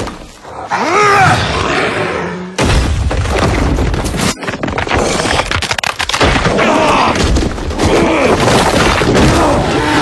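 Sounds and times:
stone masonry crashing: 0:02.7 - 0:09.8.

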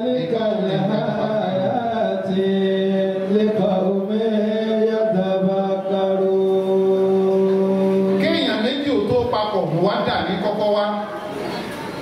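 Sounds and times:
man chanting into a microphone: 0:00.0 - 0:11.1.

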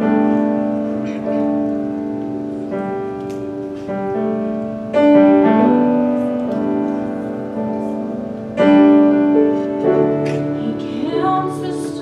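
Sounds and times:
piano playing slow chords: 0:00.0 - 0:12.0.

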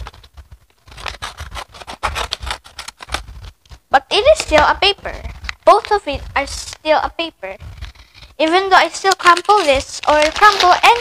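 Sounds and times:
scissors snipping paper: 0:00.8 - 0:03.4, 0:08.5 - 0:11.0.

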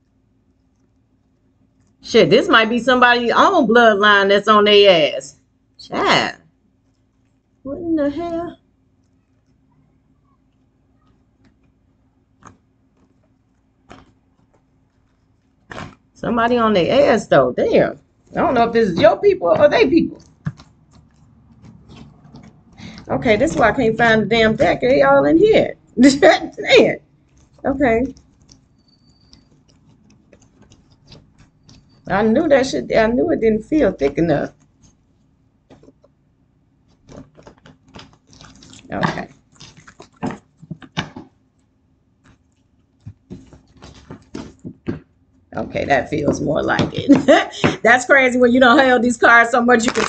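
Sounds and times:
cards shuffling: 0:36.9 - 0:41.4, 0:42.3 - 0:45.0.

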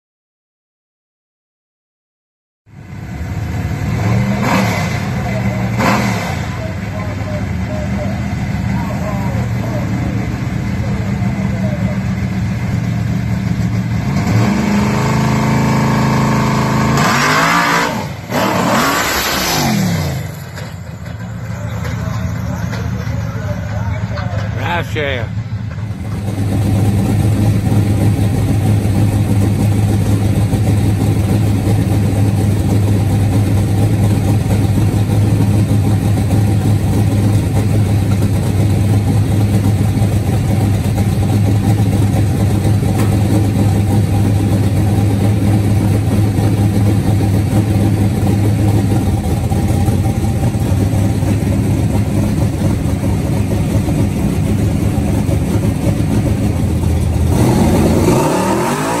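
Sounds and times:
car engine idling loud: 0:02.7 - 0:14.1, 0:20.0 - 0:59.0.

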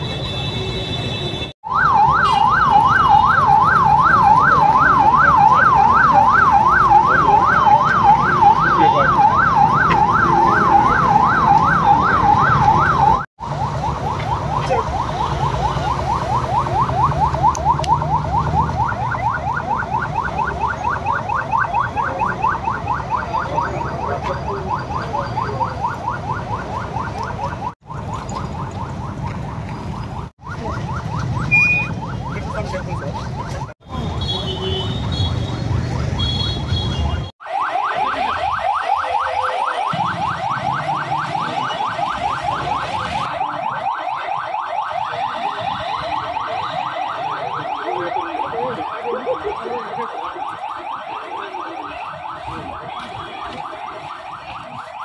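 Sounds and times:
street traffic: 0:00.0 - 0:55.0
police siren yelping: 0:01.6 - 0:55.0.

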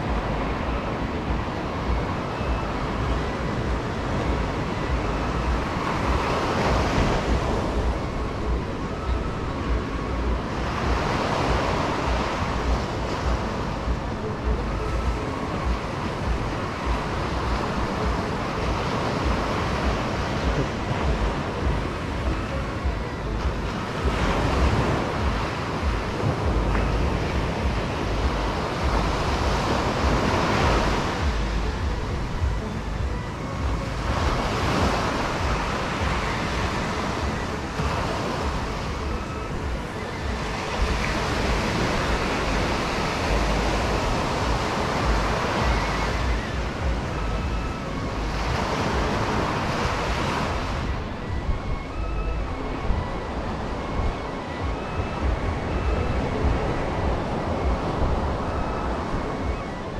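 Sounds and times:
surf breaking on sandy shore: 0:00.0 - 0:51.6
wind rumbling on microphone: 0:00.0 - 0:59.9.

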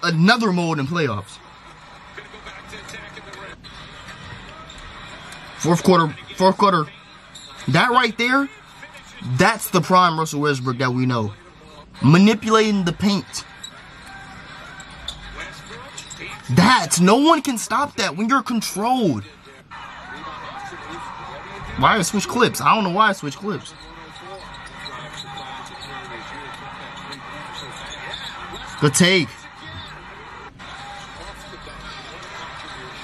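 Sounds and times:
arena crowd noise: 0:00.0 - 0:33.0
faint commentator speech: 0:14.3 - 0:33.0.

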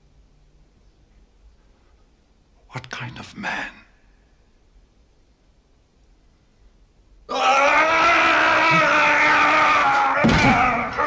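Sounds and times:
person crying out loudly: 0:07.3 - 0:11.0.

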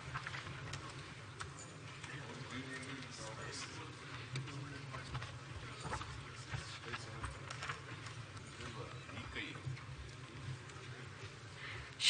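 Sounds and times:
faint background chatter: 0:00.0 - 0:12.0.

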